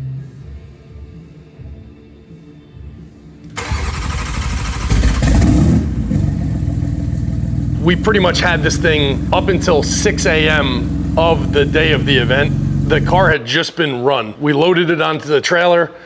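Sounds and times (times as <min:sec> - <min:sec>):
car engine cranking and starting: 0:03.5 - 0:13.3
car engine running: 0:03.5 - 0:13.4.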